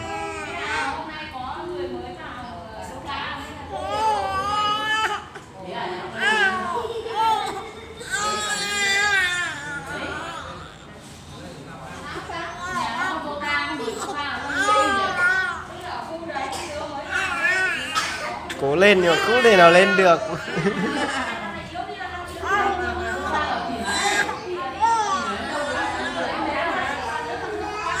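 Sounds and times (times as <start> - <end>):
indistinct chatter: 0.0 - 28.0.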